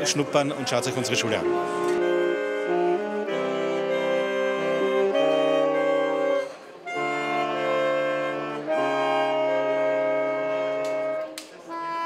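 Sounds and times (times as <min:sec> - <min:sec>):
saxophone ensemble sustained chord: 0:00.0 - 0:12.0.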